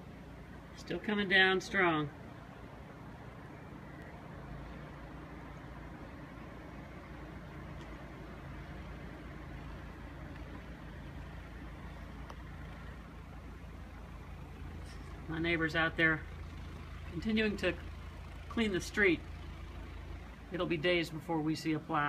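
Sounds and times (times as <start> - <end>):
vehicle engine running: 0.0 - 22.0.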